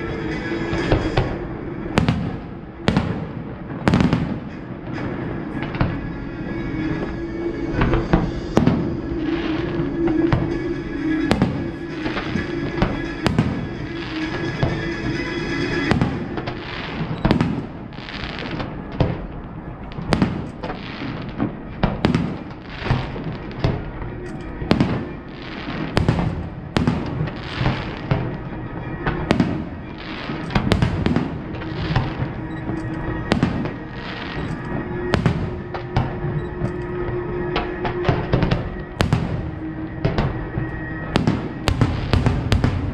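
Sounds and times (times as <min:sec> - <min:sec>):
fireworks bangs and booms: 0:00.0 - 0:42.9
music: 0:00.0 - 0:42.9.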